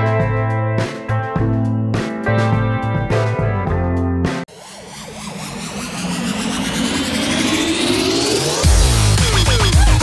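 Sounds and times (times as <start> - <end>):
synthesized riser with rising tones: 4.4 - 10.0.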